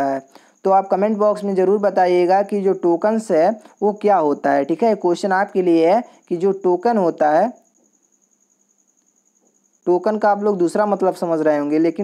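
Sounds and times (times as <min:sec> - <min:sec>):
faint pulsing high-pitched whine: 0:00.0 - 0:12.0.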